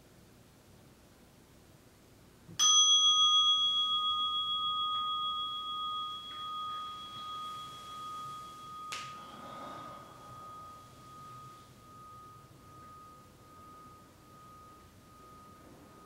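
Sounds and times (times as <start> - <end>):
meditation bell ringing: 2.6 - 16.0.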